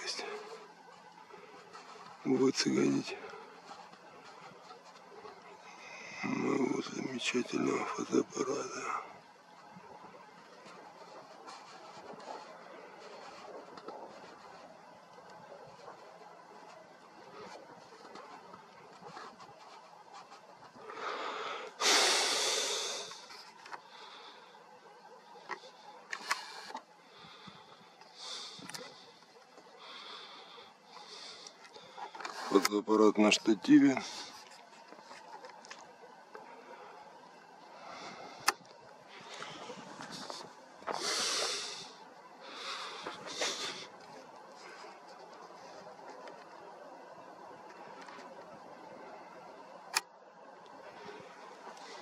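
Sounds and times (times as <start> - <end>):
faint rustling: 0.0 - 52.0.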